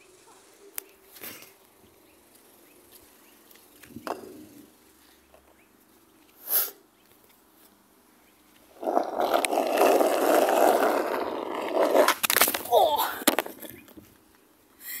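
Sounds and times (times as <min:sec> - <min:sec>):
skateboard rolling over asphalt: 0:03.5 - 0:05.4, 0:08.6 - 0:14.0
skateboard knocks: 0:03.9 - 0:04.5.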